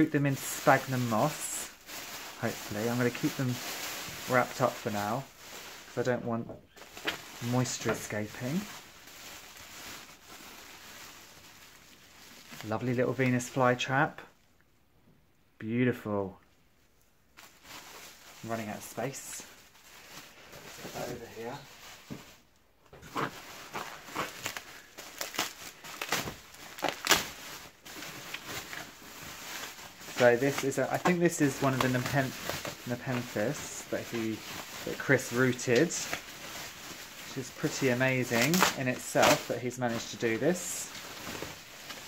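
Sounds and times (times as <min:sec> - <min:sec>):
bubble wrap crinkling: 0:00.0 - 0:14.3, 0:17.3 - 0:42.0.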